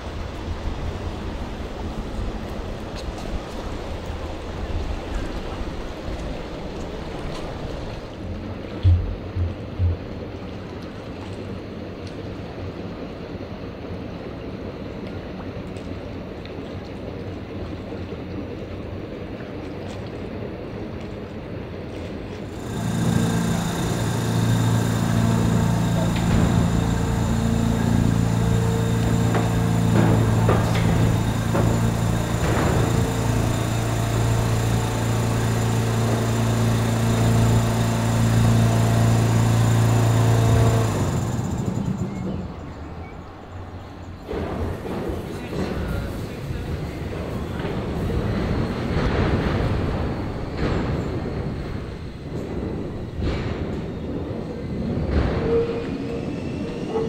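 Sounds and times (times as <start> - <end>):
electric railcar humming: 0.0 - 16.3, 17.1 - 57.0
wind: 0.0 - 57.0
water lapping against shore: 14.9 - 49.9.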